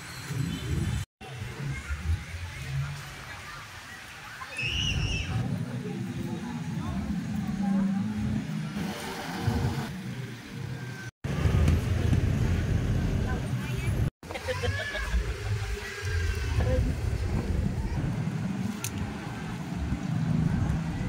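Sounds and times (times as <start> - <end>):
low traffic rumble: 0.0 - 21.0.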